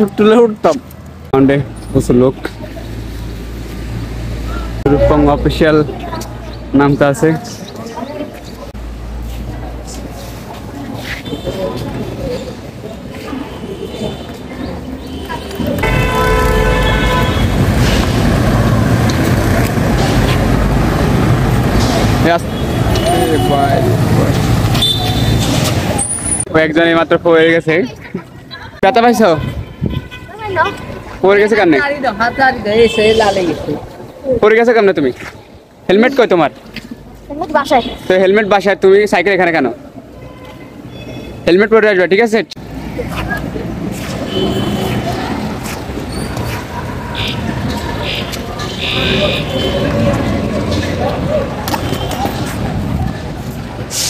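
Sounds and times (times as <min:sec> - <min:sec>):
road traffic rumble: 0:00.0 - 0:54.0
wind on microphone: 0:29.4 - 0:30.3.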